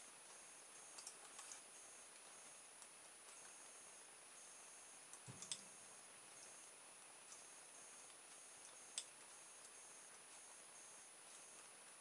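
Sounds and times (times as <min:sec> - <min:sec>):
faint high steady tone: 0:00.0 - 0:12.0.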